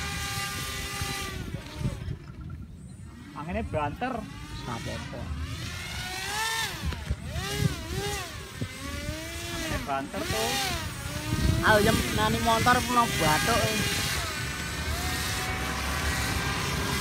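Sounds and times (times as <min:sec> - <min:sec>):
model propeller motor whining: 0:00.0 - 0:17.0
wind rumbling on microphone: 0:00.0 - 0:17.0
person speaking: 0:11.5 - 0:14.1.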